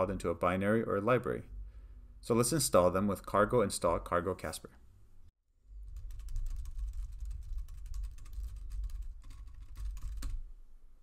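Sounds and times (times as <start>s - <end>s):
steady low hum: 1.0s - 4.1s.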